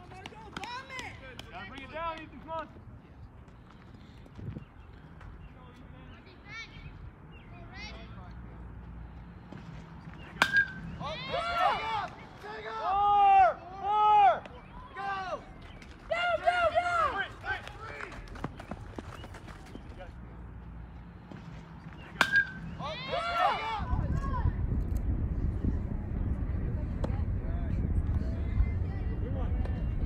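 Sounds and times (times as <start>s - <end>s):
metal bat hitting ball ping: 10.4s - 10.8s, 22.2s - 22.7s
people shouting loudly: 11.0s - 15.4s, 22.8s - 24.0s.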